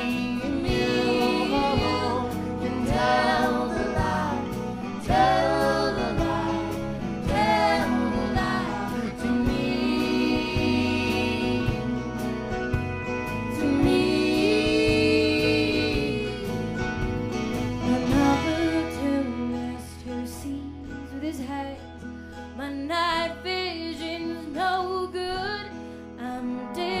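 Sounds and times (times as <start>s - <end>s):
person singing: 0.0s - 12.4s, 13.3s - 16.8s, 17.8s - 21.8s, 22.7s - 27.0s
bass line: 0.0s - 25.1s
acoustic guitar: 0.0s - 27.0s.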